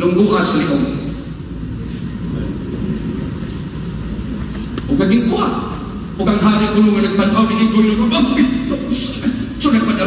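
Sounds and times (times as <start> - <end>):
low rumbling hall room tone: 0.0 - 10.0.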